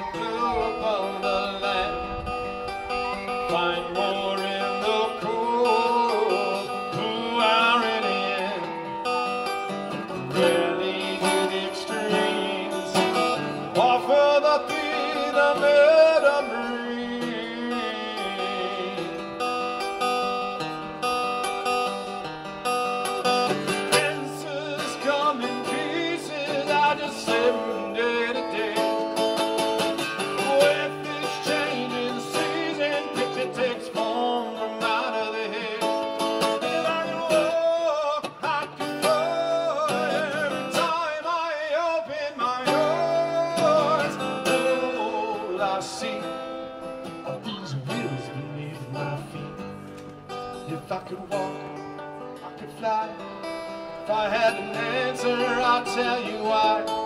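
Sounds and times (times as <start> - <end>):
acoustic guitar strummed and picked: 0.0 - 57.0.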